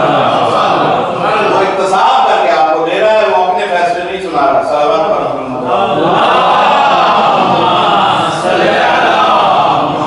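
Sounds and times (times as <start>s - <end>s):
men reciting in unison: 0.0s - 10.0s.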